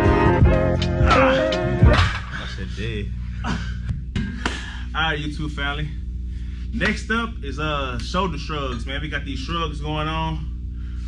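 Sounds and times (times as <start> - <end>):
background music: 0.0 - 2.4
low room hum: 0.0 - 11.0.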